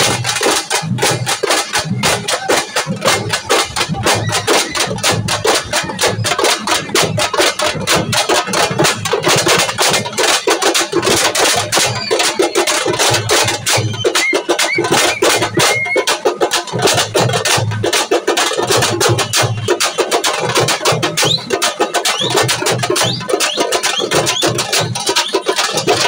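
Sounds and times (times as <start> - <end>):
loud rapid drumming: 0.0 - 26.0.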